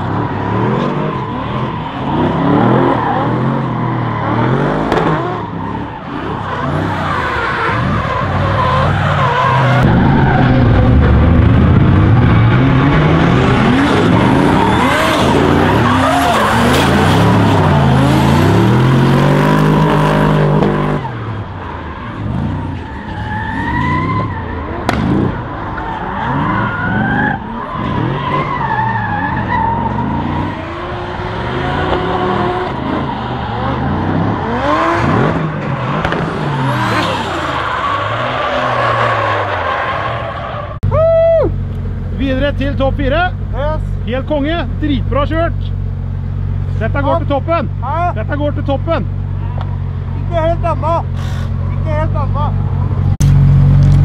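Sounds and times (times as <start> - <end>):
car engines revving: 0.0 - 54.0
tyres skidding: 0.0 - 54.0.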